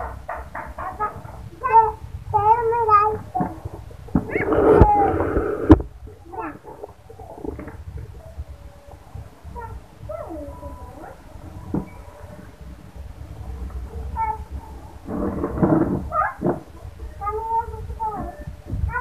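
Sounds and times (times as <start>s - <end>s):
children calling and laughing: 0.0s - 19.0s.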